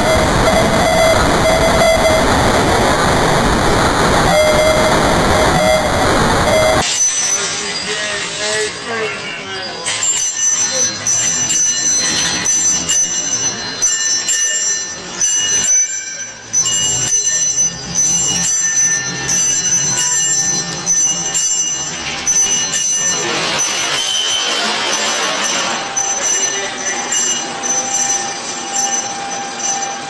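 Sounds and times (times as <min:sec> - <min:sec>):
dense noise layer: 0:00.0 - 0:06.9
high metallic ringing tones: 0:00.0 - 0:30.0.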